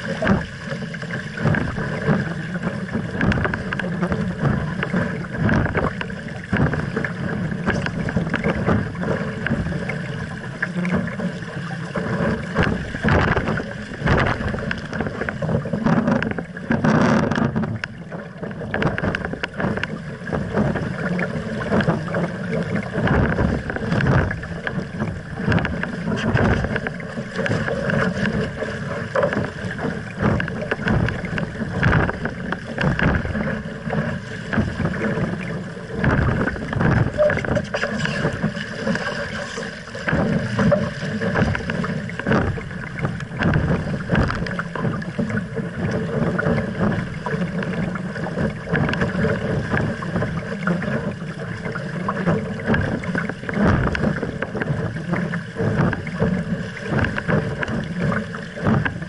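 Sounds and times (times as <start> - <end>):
water splashing along hull: 0.0 - 59.0
wind buffeting microphone: 12.3 - 39.4.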